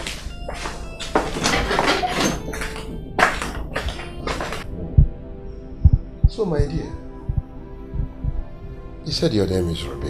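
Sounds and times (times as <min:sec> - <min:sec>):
soft low thuds: 0:04.7 - 0:08.6.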